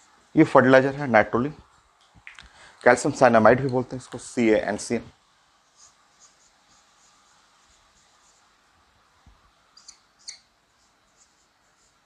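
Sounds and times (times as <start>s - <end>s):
marker squeaking on whiteboard: 5.6s - 8.6s, 9.7s - 12.0s.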